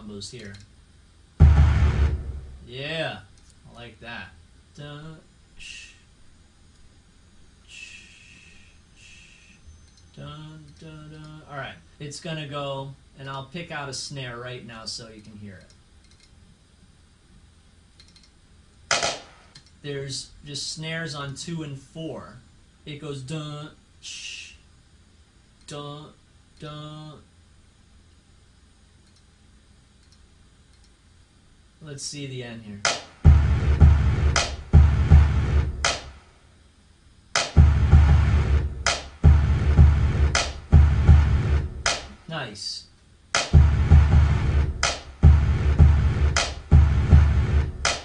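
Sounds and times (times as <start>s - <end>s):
snare drum crack: 1.4s - 2.7s, 18.9s - 19.5s, 32.8s - 36.3s, 37.4s - 42.3s, 43.4s - 48.0s.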